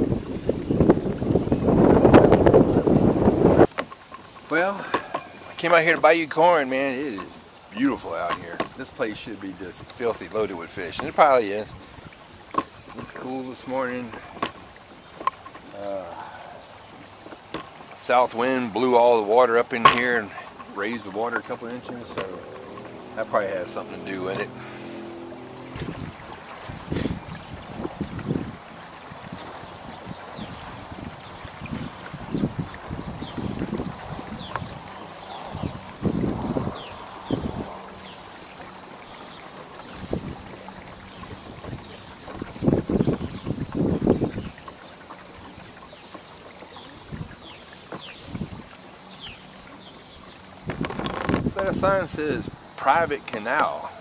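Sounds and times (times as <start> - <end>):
wind buffeting microphone: 0.0 - 3.8, 18.2 - 38.2, 39.7 - 44.8, 46.8 - 49.9, 50.6 - 53.1
low thumps and water swishes: 0.0 - 54.0.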